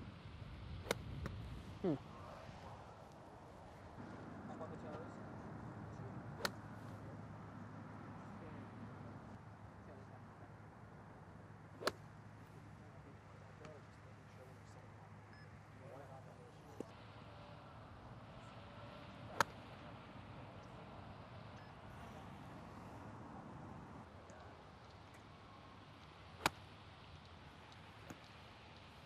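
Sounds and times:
faint outdoor background: 0.0s - 29.0s
golf wedge striking ball: 6.4s - 6.6s, 26.4s - 26.6s.

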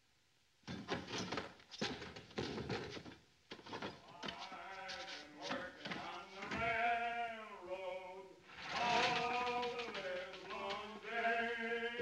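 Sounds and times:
men singing: 4.0s - 12.0s.

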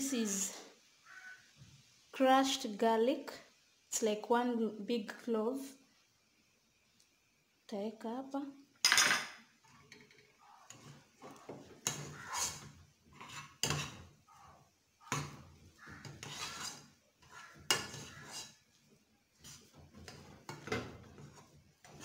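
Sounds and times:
potato masher scraping a pot: 10.6s - 18.8s, 19.4s - 22.0s.

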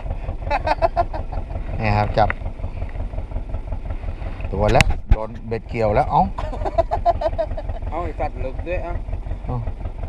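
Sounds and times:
boat engine idling: 0.0s - 10.0s.

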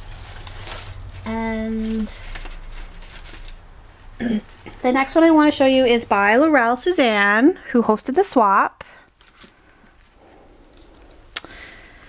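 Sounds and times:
paper rustling: 0.0s - 4.1s, 9.2s - 10.1s.

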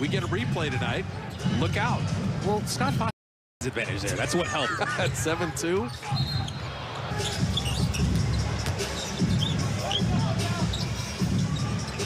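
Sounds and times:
basketball bouncing on court: 7.6s - 9.6s.

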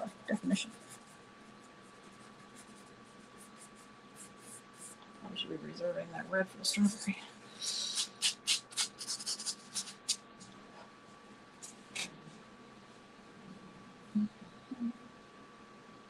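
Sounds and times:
pastel scratching on paper: 0.6s - 5.0s, 7.7s - 10.2s.

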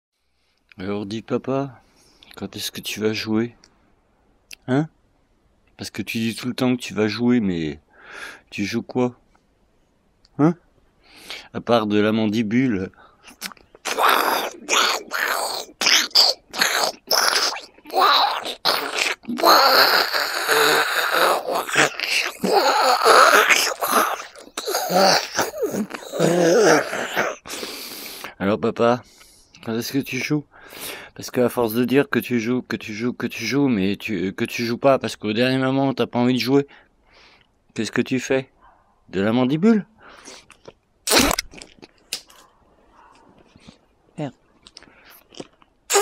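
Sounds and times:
man's muffled vocal noises: 12.7s - 27.5s
person chewing and crunching food: 13.3s - 27.8s, 40.3s - 42.4s, 44.6s - 46.0s.

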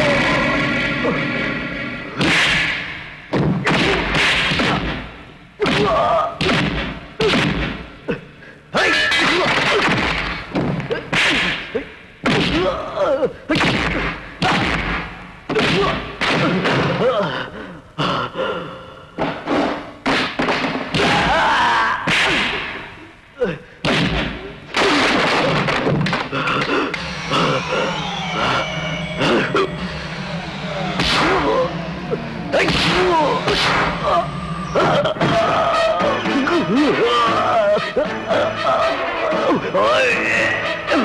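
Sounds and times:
background music: 0.0s - 41.0s
punch hits: 2.2s - 7.8s, 23.8s - 26.1s
fighters grunting and shouting: 5.6s - 6.5s
whooshes: 27.0s - 35.2s
men yelling and grunting: 32.5s - 41.0s.

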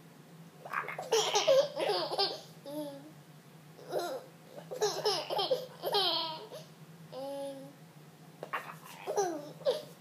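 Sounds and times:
toddler laughing: 1.0s - 3.0s, 3.8s - 6.7s, 9.0s - 10.0s.

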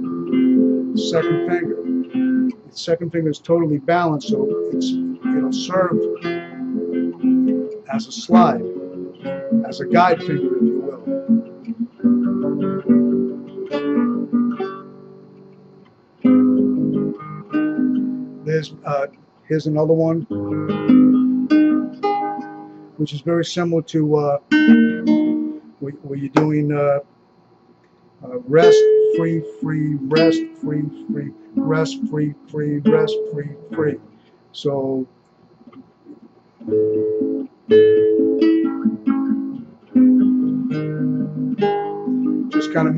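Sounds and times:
classical guitar plucked fingerstyle: 0.0s - 2.7s, 3.6s - 15.6s, 16.2s - 19.1s, 20.2s - 22.8s, 24.4s - 26.7s, 28.5s - 34.0s, 36.1s - 42.9s.

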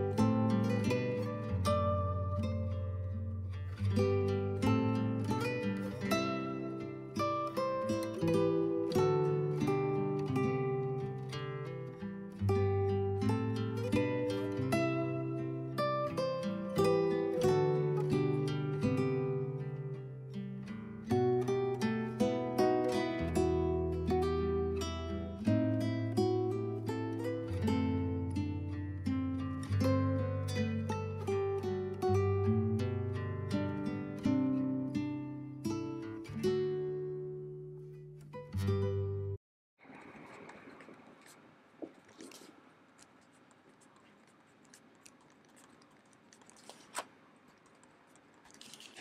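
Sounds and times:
plucked string music with bass: 0.0s - 39.4s.

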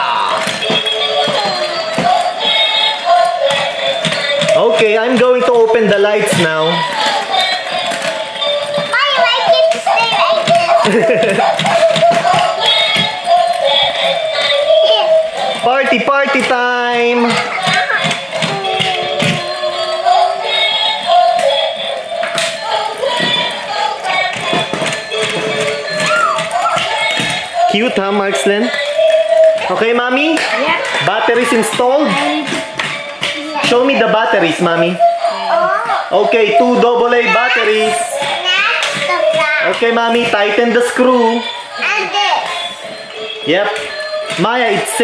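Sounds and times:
electronic dance song with singing: 0.0s - 9.0s, 9.8s - 38.4s, 42.5s - 45.0s.

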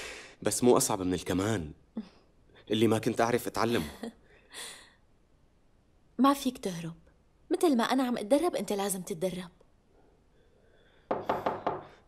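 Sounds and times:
knocking on a door: 11.1s - 12.0s.

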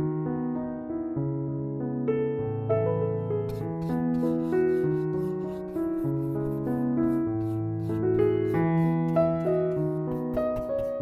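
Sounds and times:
soft piano music: 0.0s - 11.0s
brush scrubbing paint on canvas: 3.5s - 11.0s.

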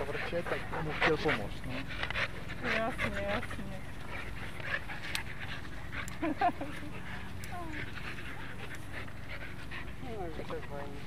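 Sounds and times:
dogs panting and scuffling: 0.0s - 11.0s.

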